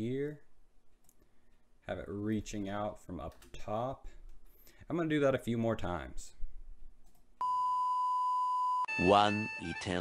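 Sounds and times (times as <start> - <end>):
steady pure test tone beep: 7.4 - 10.0.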